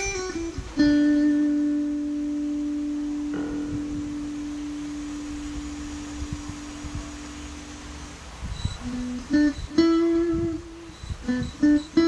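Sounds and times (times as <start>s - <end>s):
electric guitar sustained note: 0.0s - 12.0s.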